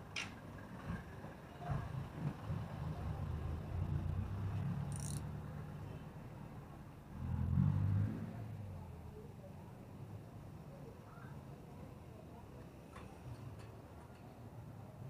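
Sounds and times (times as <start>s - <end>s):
traffic engine rumble: 0.0s - 15.0s.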